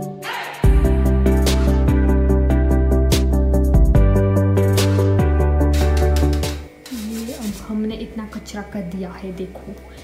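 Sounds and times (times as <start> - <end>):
spoon scraping through mesh sieve: 5.7 - 7.9
woman talking: 6.8 - 10.0.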